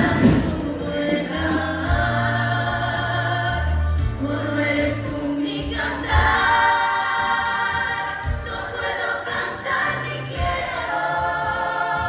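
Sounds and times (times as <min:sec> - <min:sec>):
children's choir singing: 0:00.0 - 0:12.0
woman singing: 0:00.0 - 0:12.0.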